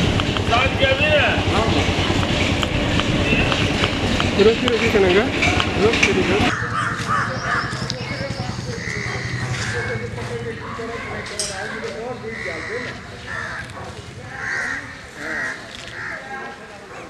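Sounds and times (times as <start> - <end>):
steady low rumble: 0.0 - 11.2
crows cawing: 6.5 - 7.8, 8.7 - 16.6.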